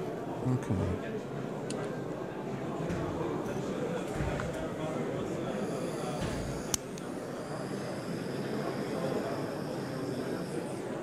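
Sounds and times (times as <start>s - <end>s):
gas soldering torch hissing: 5.6s - 10.8s
sharp click: 6.2s - 7.1s.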